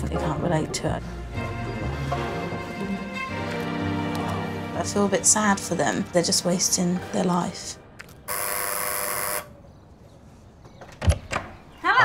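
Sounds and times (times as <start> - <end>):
intercom buzzer: 8.3 - 9.5.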